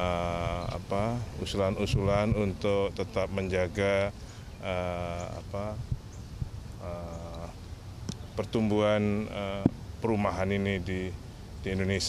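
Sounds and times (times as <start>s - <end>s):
man's drawn-out hesitation sound: 0.0s - 6.0s, 6.7s - 7.6s
steady low hum: 0.0s - 12.0s.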